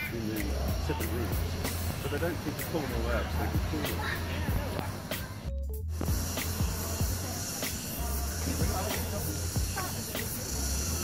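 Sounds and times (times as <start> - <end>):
steady hiss: 0.0 - 11.0
voices: 0.0 - 11.0.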